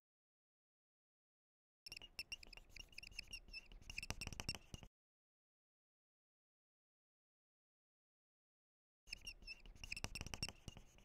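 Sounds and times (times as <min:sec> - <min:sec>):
marker squeaking on whiteboard: 0:01.9 - 0:04.9, 0:09.1 - 0:11.0.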